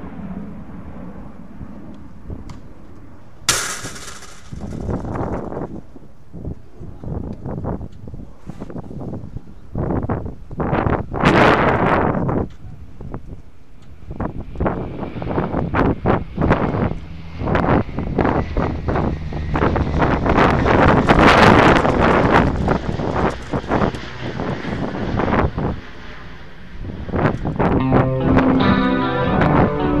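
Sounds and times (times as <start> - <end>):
wind buffeting microphone: 4.5 - 25.9, 26.7 - 28.6.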